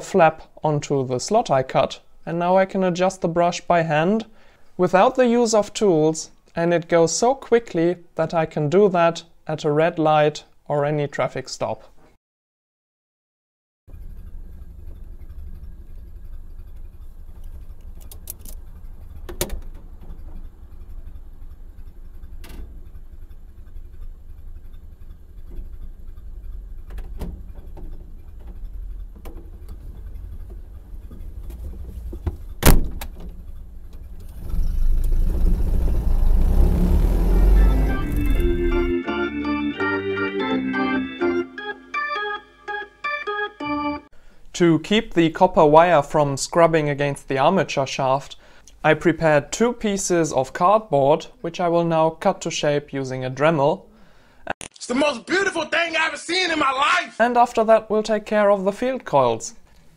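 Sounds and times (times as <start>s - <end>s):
car engine rumbling: 13.9s - 39.0s
organ music: 36.8s - 44.1s.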